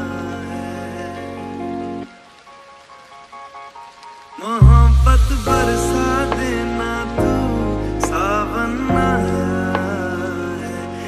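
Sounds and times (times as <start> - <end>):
faint rain sound: 0.0 - 11.0
bass-heavy lofi music: 4.6 - 11.0.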